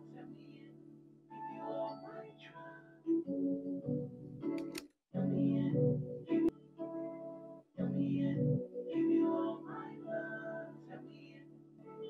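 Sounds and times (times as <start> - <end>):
keyboard and vocal notes: 0.0 - 12.0.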